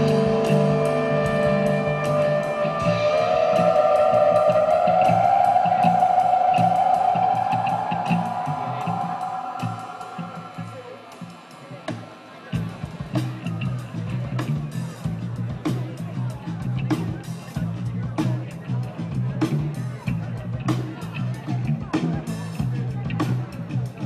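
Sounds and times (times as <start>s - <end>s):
electric guitar sustained note: 0.0s - 11.7s
pulsing bass line: 0.0s - 11.8s
live band playing: 0.0s - 24.0s.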